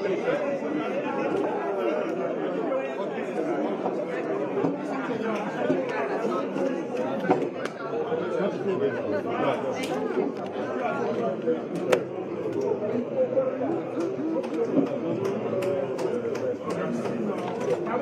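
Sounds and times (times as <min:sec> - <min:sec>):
crowd of men talking: 0:00.0 - 0:18.0.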